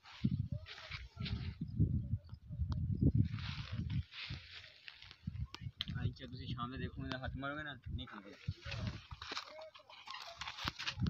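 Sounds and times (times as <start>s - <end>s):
footsteps on sandy ground: 0.0s - 1.7s, 3.2s - 5.4s.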